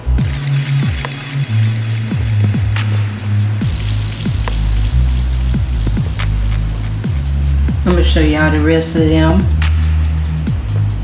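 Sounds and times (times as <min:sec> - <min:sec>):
booming kick drums: 0:00.0 - 0:01.2, 0:03.6 - 0:09.8
deep sustained bass notes: 0:00.0 - 0:11.0.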